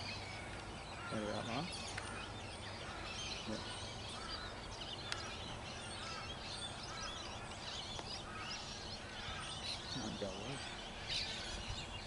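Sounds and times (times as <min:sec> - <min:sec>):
birds chirping and warbling: 0:00.0 - 0:12.0
outdoor background hiss: 0:00.0 - 0:12.0.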